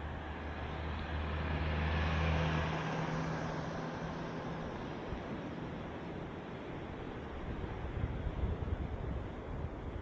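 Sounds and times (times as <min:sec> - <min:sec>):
car driving past: 0:00.0 - 0:04.7.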